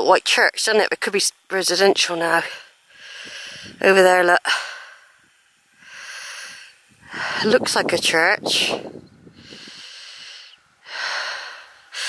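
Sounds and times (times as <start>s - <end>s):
person breathing close to microphone: 2.4s - 3.8s, 4.5s - 7.7s, 8.7s - 12.0s.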